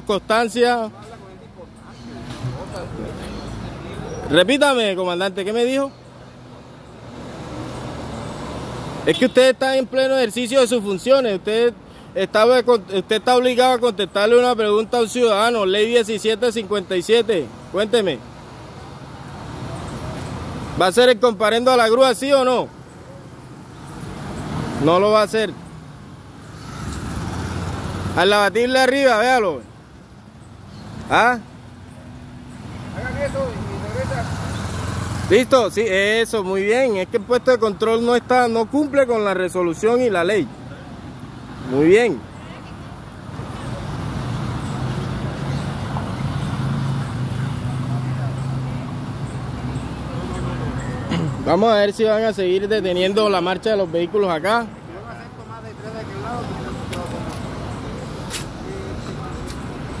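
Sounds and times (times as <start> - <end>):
traffic rumble: 0.0 - 60.0.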